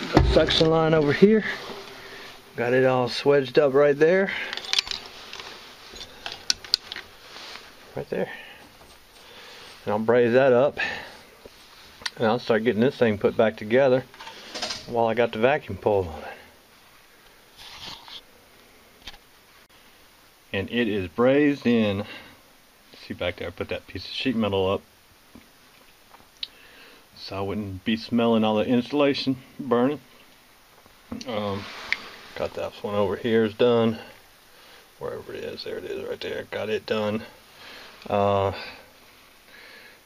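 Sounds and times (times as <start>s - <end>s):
faint steady hiss: 0.0s - 40.0s.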